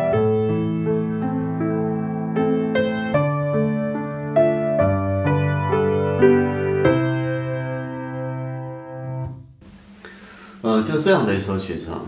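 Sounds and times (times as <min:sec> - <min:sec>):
grand piano chord ringing: 0:00.0 - 0:09.4.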